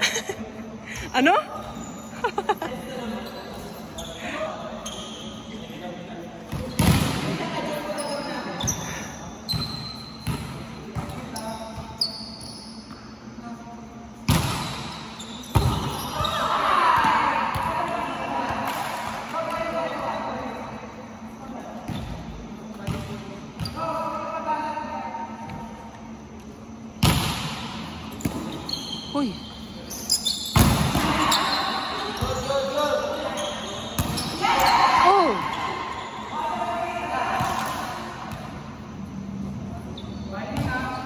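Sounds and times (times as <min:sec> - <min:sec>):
volleyball hits ringing in a hall: 0:00.0 - 0:41.0
ball bouncing on gym floor: 0:09.5 - 0:12.0, 0:21.9 - 0:23.9, 0:34.0 - 0:35.5.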